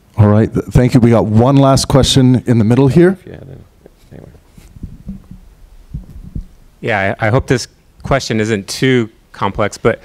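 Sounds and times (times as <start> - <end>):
faint low thumps: 3.8 - 8.0
low rumble: 4.7 - 6.8.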